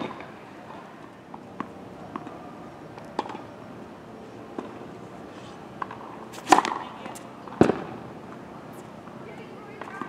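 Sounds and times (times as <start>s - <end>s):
tennis racket hitting ball: 5.8s - 7.9s.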